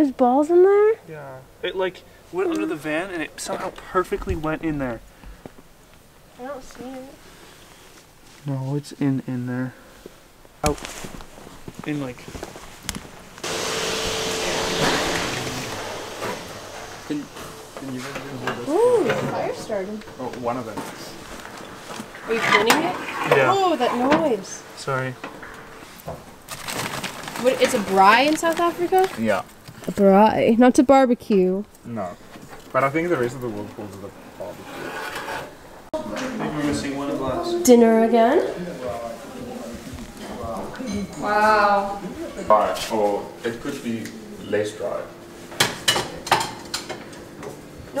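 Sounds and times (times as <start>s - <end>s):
wire grill grate scraping: 34.4s - 35.6s
kitchenware clinking: 45.6s - 47.6s.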